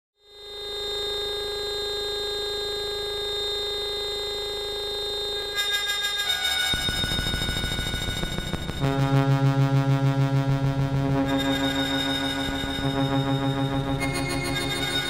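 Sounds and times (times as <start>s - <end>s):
synthesizer drone: 5.0s - 15.0s
low bass pulse: 8.5s - 14.3s.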